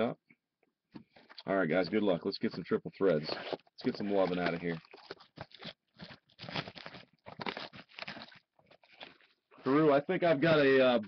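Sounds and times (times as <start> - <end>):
plastic shrink wrap crinkling: 3.2 - 9.8.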